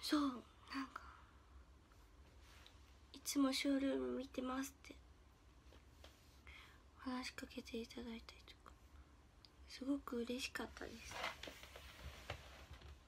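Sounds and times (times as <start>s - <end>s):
young woman speaking softly: 0.0s - 1.2s, 3.1s - 5.0s, 7.0s - 8.8s, 9.6s - 11.3s
faint low hum: 0.0s - 13.0s.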